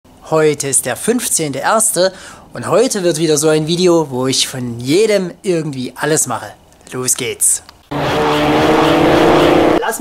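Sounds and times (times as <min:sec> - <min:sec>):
car engine revving high: 0:07.9 - 0:10.0.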